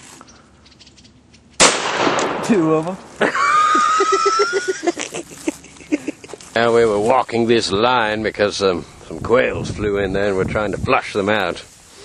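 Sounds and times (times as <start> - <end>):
gunshot: 1.6 - 2.8.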